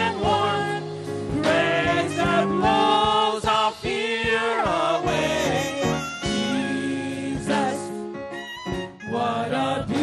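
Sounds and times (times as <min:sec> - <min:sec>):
backing singers: 0:00.0 - 0:08.0, 0:09.0 - 0:10.0
keyboard and band: 0:00.0 - 0:10.0.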